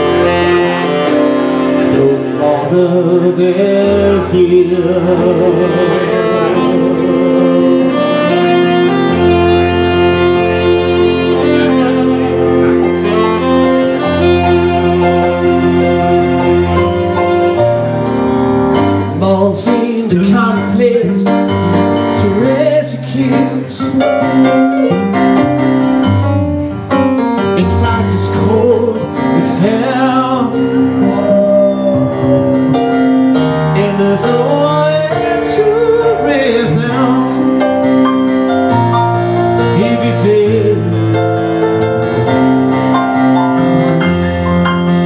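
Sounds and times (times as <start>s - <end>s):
saxophone playing melody: 0.0s - 2.9s, 3.6s - 19.2s, 23.3s - 45.0s
bass line: 0.0s - 45.0s
electric keyboard accompaniment: 0.0s - 45.0s.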